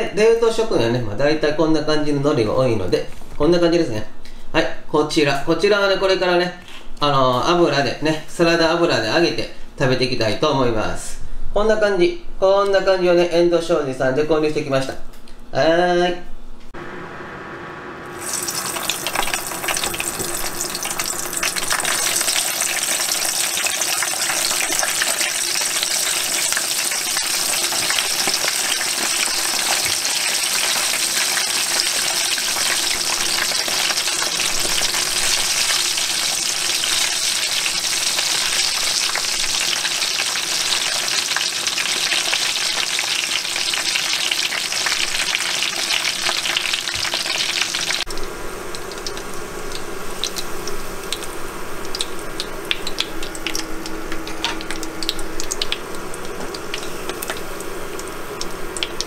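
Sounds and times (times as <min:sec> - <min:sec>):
food deep-frying in oil: 0:18.0 - 0:59.0.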